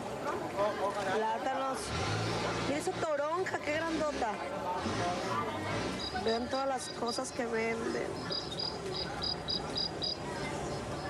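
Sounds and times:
background murmur: 0.0s - 11.0s
cricket-like chirping: 8.2s - 10.2s.

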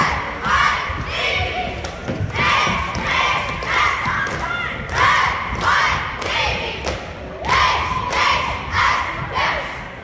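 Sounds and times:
rhythmic thuds: 0.0s - 9.4s
cheerleaders shouting in unison: 0.0s - 10.0s.

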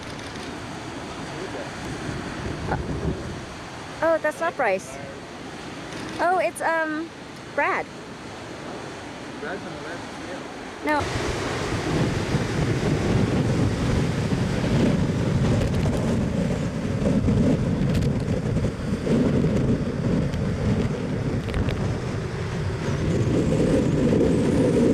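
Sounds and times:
surf breaking: 0.0s - 24.9s
wind buffeting microphone: 0.0s - 24.9s.

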